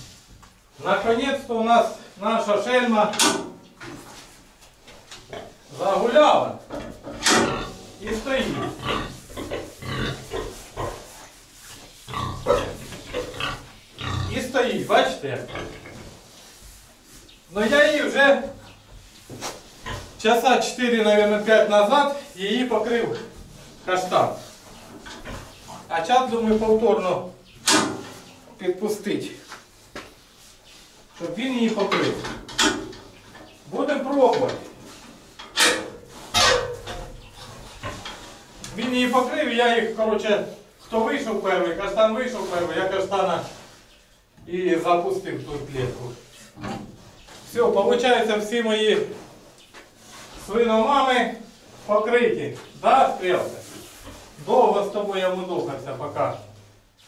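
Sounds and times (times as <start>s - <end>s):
pigs grunting: 6.8s - 11.2s, 12.0s - 16.2s.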